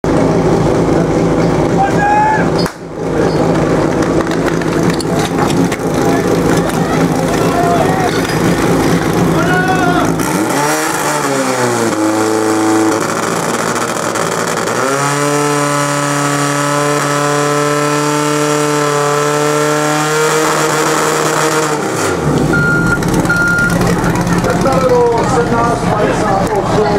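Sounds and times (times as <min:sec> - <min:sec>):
pump engine revving: 0:00.0 - 0:26.9
spectators shouting: 0:01.7 - 0:02.6, 0:05.8 - 0:10.4
short beeps: 0:22.5 - 0:23.8.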